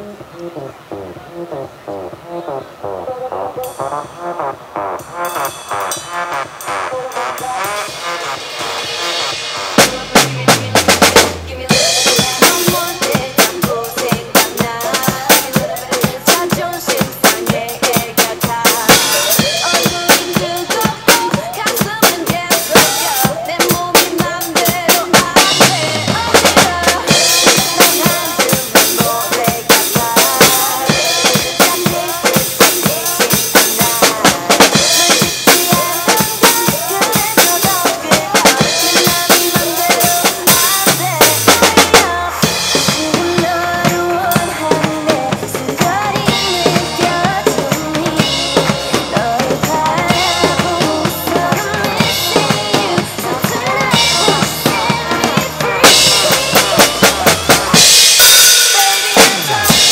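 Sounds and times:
acoustic drum kit playing: 0:00.0 - 0:59.9
pop backing track: 0:00.0 - 0:59.9
heavy cymbal crashes: 0:03.7 - 0:13.2, 0:54.0 - 0:59.9.

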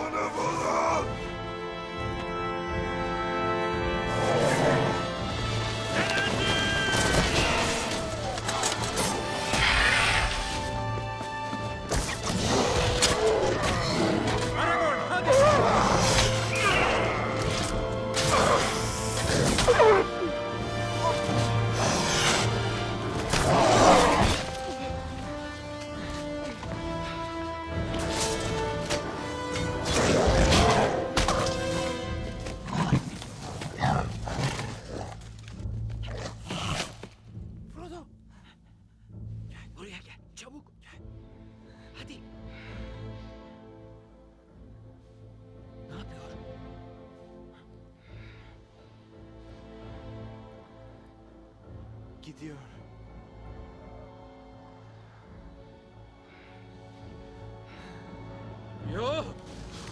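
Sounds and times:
orchestral score: 0:00.0 - 0:59.9
creatures growling and snarling: 0:09.5 - 0:10.4, 0:23.3 - 0:24.6.

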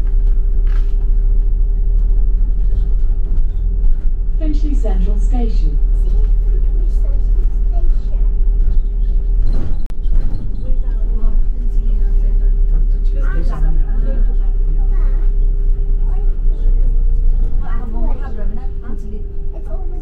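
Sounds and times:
bus engine and road rumble: 0:00.0 - 0:20.0
constant hum: 0:00.0 - 0:20.0
passengers talking: 0:00.0 - 0:20.0.

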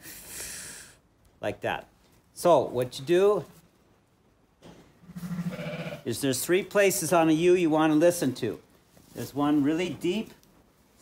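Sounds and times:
sheep bleating: 0:05.0 - 0:06.1.

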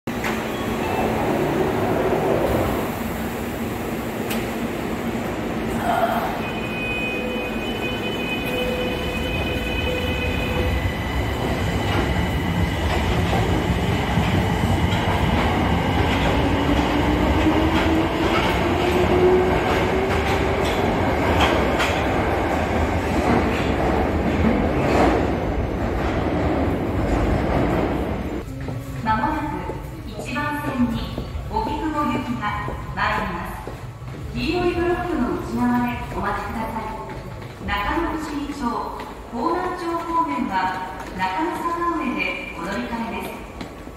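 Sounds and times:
subway train pulling out: 0:00.1 - 0:43.9.

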